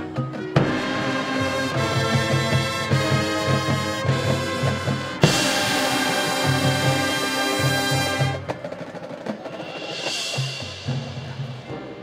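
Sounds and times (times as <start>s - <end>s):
quieter percussion: 0.0s - 12.0s
marching band brass chord: 0.6s - 12.0s.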